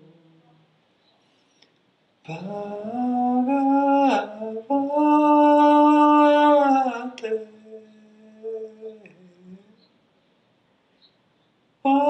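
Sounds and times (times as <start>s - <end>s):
person humming chanted syllable: 0.0s - 0.7s, 2.3s - 9.9s.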